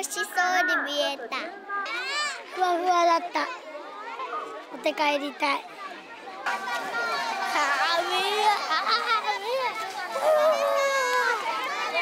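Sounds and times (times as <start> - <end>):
children shouting and chattering: 0.0 - 12.0.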